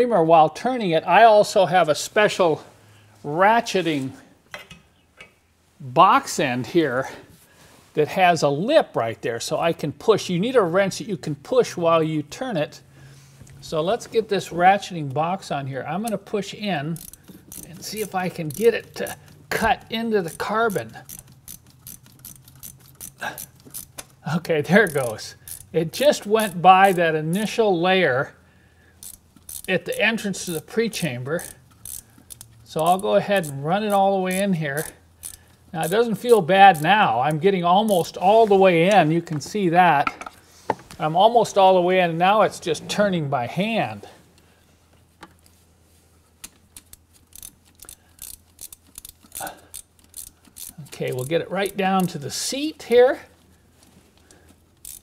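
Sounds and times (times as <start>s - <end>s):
ratcheting wrench clicking: 16.8s - 24.2s, 24.8s - 27.5s, 29.0s - 36.9s, 46.4s - 52.1s, 54.2s - 55.0s.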